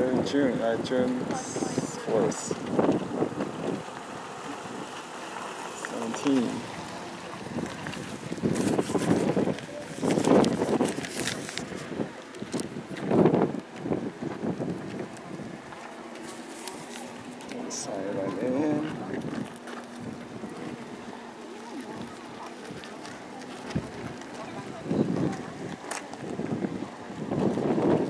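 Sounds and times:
wind gusting across microphone: 0:00.0 - 0:28.0
paper page rustling: 0:08.5 - 0:11.9.

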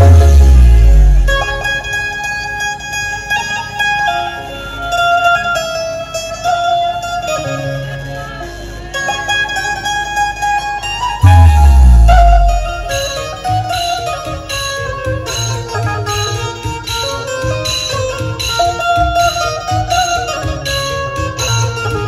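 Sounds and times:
sustained bass note: 0:00.0 - 0:02.2, 0:11.2 - 0:13.2
amplified banjo melody: 0:00.0 - 0:22.0.

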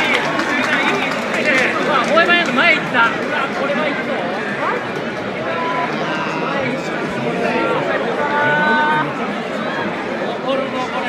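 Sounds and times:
crowd background din: 0:00.0 - 0:11.0
spectators talking and calling out: 0:00.0 - 0:11.0.

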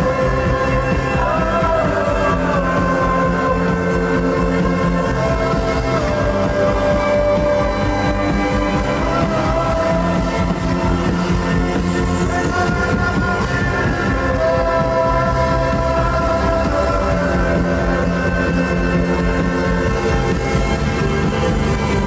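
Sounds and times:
loud live synth-pop music: 0:00.0 - 0:22.0.

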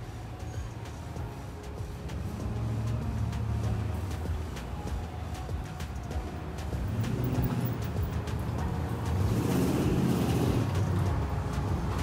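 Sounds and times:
car engines rumbling: 0:00.0 - 0:12.0
vehicle passing: 0:06.6 - 0:12.0.

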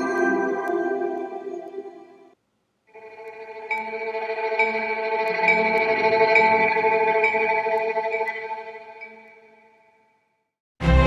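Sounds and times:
intro music with repeating note: 0:00.0 - 0:09.8.

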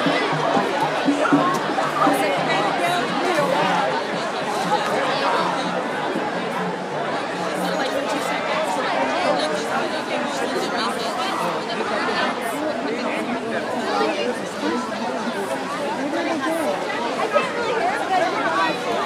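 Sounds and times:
crowd chattering: 0:00.0 - 0:19.0.

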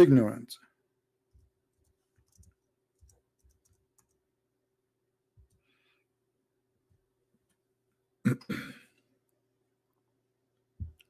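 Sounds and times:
man clearing his throat: 0:08.3 - 0:08.9.

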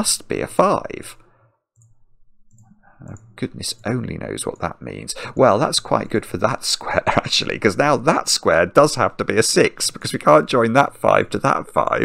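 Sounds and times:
computer mouse clicks: 0:01.8 - 0:03.3.

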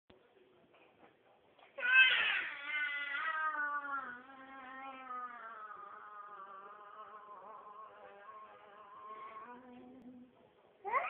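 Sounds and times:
toddler crying: 0:01.8 - 0:09.4.

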